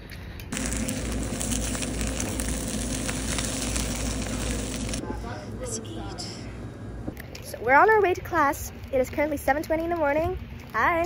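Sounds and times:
omelette sizzling in a frying pan: 0:00.5 - 0:05.0
low kitchen hum: 0:00.5 - 0:07.9.

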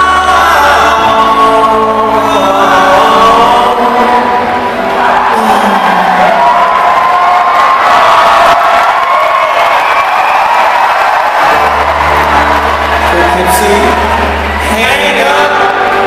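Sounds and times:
acoustic guitar: 0:00.0 - 0:06.8
crowd cheering and whooping: 0:03.0 - 0:16.0.

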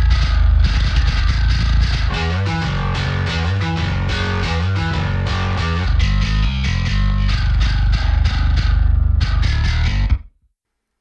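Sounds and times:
bass guitar metal riff: 0:00.0 - 0:10.3.

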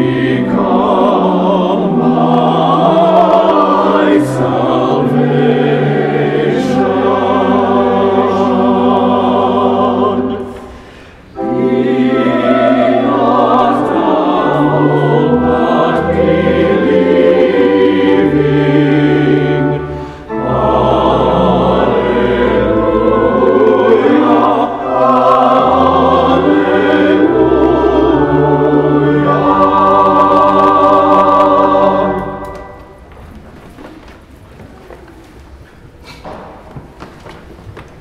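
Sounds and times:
choir singing a hymn: 0:00.0 - 0:33.1.

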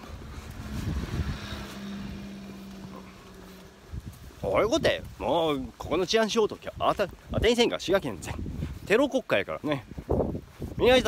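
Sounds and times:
vehicle engine running: 0:00.0 - 0:04.9.

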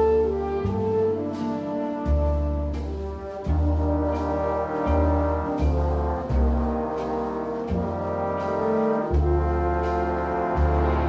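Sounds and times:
low bass notes: 0:00.0 - 0:11.0
orchestral brass chords: 0:00.0 - 0:11.0.

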